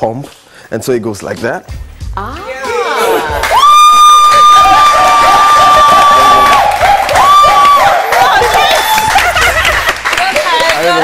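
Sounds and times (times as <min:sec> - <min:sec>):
women cheering: 0:02.4 - 0:10.8
high-pitched whoop: 0:02.9 - 0:09.2.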